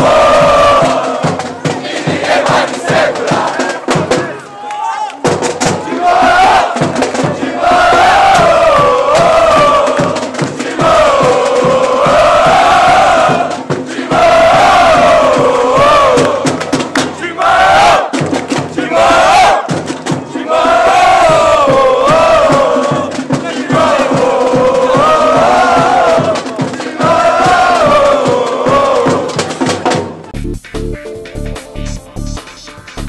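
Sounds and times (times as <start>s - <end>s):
crowd chanting in unison: 0.0s - 4.6s, 5.6s - 29.7s.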